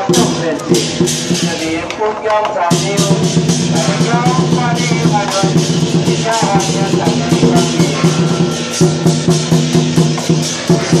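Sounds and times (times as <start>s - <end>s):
barrel drum beating: 0.0s - 11.0s
cymbals clashing: 0.0s - 11.0s.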